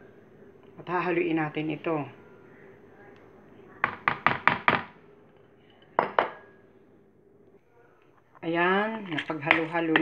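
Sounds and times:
kitchenware clinking: 0:03.9 - 0:06.6, 0:08.9 - 0:10.0.

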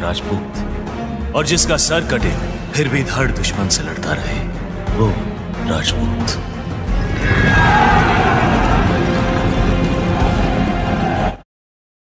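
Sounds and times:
dramatic film music: 0:00.0 - 0:11.4
horse whinnying: 0:07.0 - 0:09.0.

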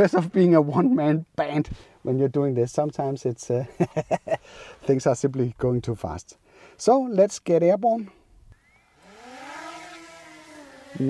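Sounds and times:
drone propellers whining: 0:08.6 - 0:11.0.

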